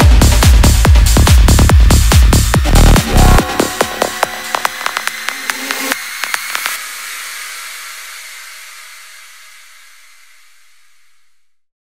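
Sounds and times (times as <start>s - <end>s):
fast kick-drum beats: 0.0s - 6.9s
hissing noise tail: 3.0s - 11.3s.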